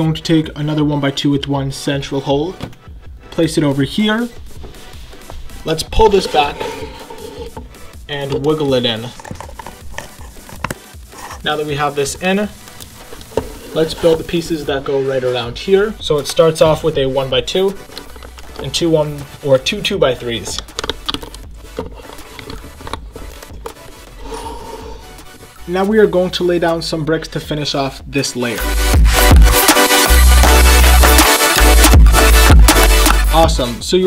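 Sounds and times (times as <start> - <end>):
plastic parts rubbing and clicking: 4.6 - 14.7, 16.2 - 24.2
plastic bricks scraping: 6.0 - 14.5, 16.2 - 24.2
plastic bricks clicking: 20.5 - 23.8.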